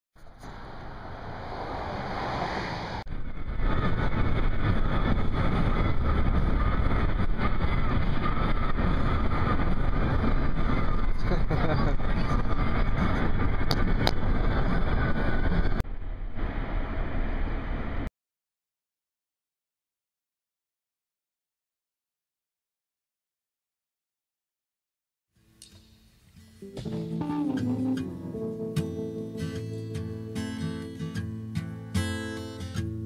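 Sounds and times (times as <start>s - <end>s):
car road and wind noise: 0.2s - 18.1s.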